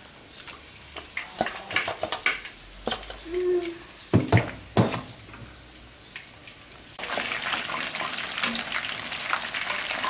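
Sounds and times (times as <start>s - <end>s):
oil sizzling with pops: 0.0s - 10.0s.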